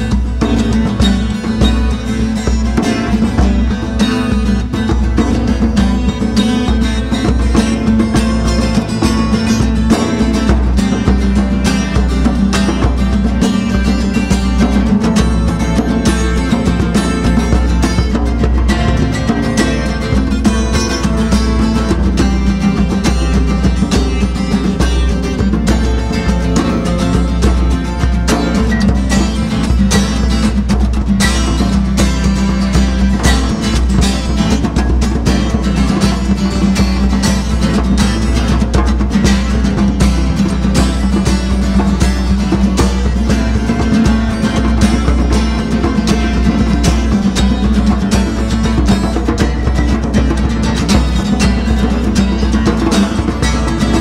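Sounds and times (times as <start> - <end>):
djembes played by hand: 0.0 - 54.0
strummed acoustic guitar: 0.0 - 54.0.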